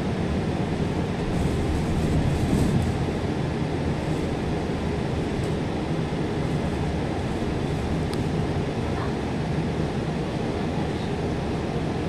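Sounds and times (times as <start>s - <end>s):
bus engine rumble: 0.0s - 12.0s.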